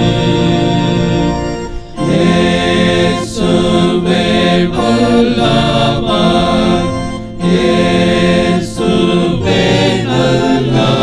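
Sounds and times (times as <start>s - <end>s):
men's choir chanting: 0.0s - 1.4s, 2.0s - 11.0s.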